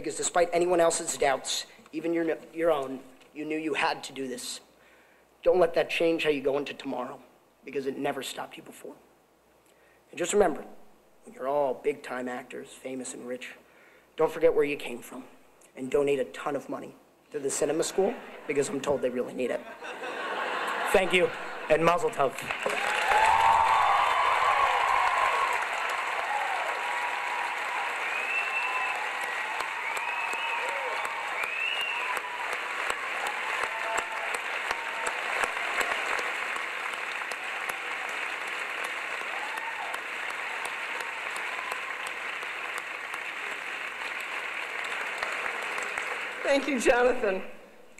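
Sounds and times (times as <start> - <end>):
audience applauding: 22.3 - 46.9
people whooping: 22.7 - 36.5, 37.1 - 42.3.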